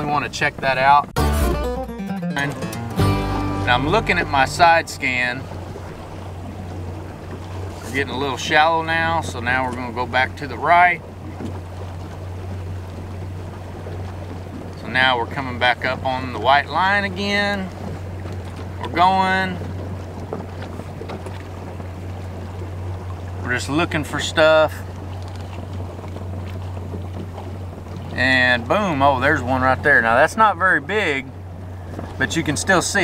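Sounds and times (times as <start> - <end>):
water and wind noise: 0.0 - 1.5, 2.4 - 33.0
boat motor humming: 0.0 - 33.0.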